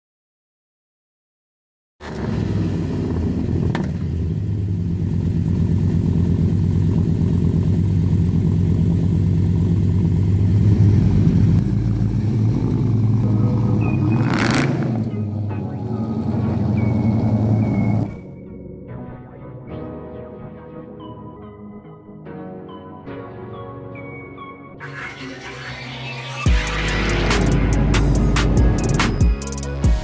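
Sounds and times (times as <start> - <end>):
car engine idling: 2.5 - 18.2, 26.5 - 29.6.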